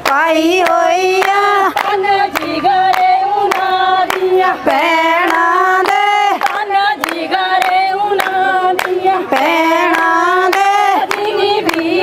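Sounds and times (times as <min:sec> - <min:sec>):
rhythmic hand claps: 0:00.0 - 0:12.0
women singing in chorus: 0:00.0 - 0:12.0.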